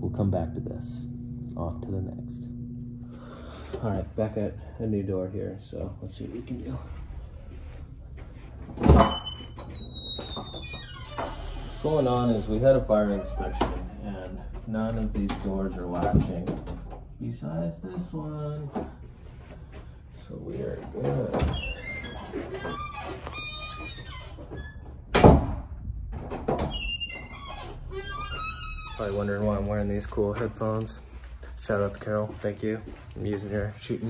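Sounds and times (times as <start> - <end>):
door hardware squeaking: 8.8 - 14.1, 21.0 - 25.2, 26.3 - 29.4
fire door closing with heavy thud: 25.1 - 26.9.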